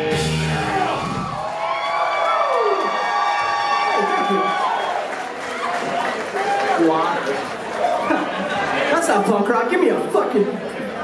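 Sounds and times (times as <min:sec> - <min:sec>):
crowd chatter echoing in hall: 0:00.0 - 0:11.0.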